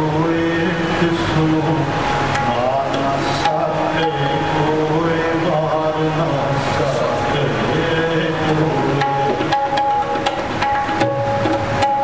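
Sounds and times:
man singing: 0:00.0 - 0:09.8
harmonium sustained notes: 0:00.0 - 0:10.1.

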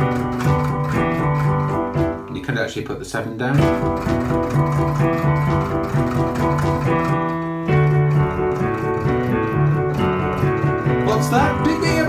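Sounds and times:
rock and roll piano: 0:00.0 - 0:12.0.

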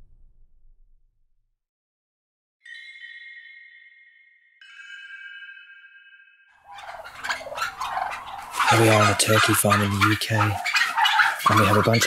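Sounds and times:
turkeys gobbling: 0:06.6 - 0:12.0.

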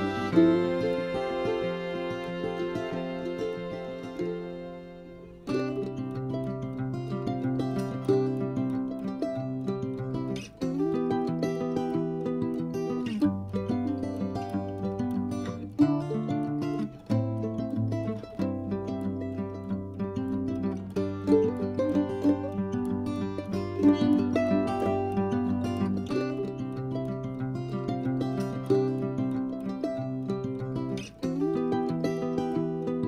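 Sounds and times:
plucked-string notes: 0:00.0 - 0:33.0.

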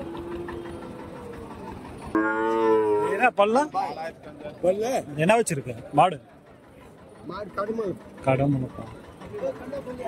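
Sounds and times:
cow mooing: 0:02.2 - 0:03.3.

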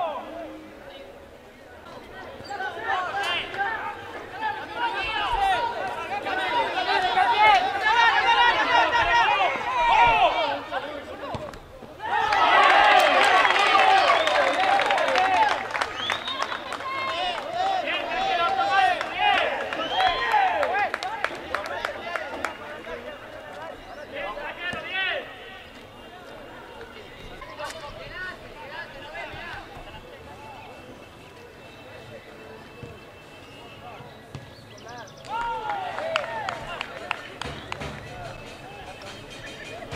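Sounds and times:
voices shouting: 0:02.2 - 0:11.3, 0:12.0 - 0:34.2.

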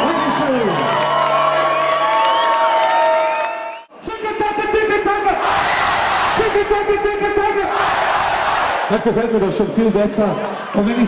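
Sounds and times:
concert crowd cheering and shouting: 0:00.0 - 0:09.0.

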